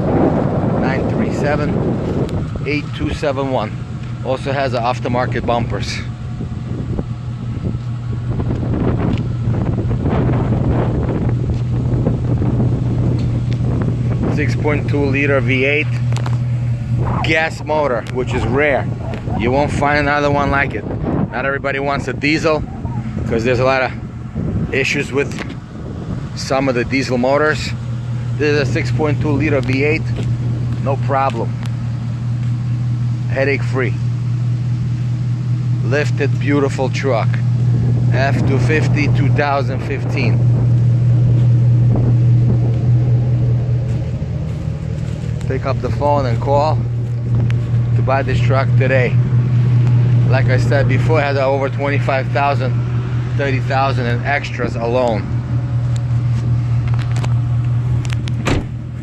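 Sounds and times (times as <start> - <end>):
wind buffeting microphone: 0.0 - 4.2, 5.0 - 31.8, 37.4 - 59.0
low engine hum: 0.0 - 59.0.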